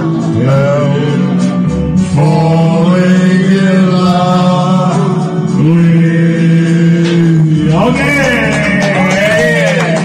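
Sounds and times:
man singing karaoke: 0.0s - 10.0s.

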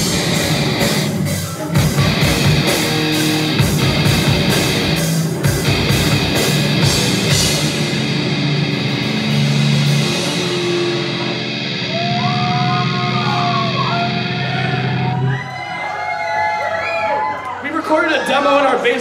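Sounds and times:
high wavering guitar notes: 0.0s - 15.3s
heavy metal band playing: 0.0s - 15.4s.

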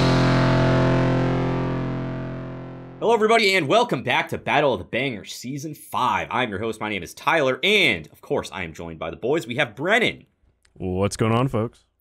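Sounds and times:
distorted electric guitar chord: 0.0s - 3.0s
intro music: 0.0s - 3.2s.

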